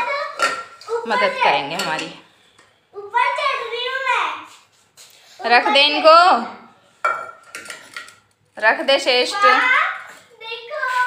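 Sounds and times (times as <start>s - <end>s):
saucepan clanking on concrete: 1.6s - 2.3s, 7.0s - 8.4s.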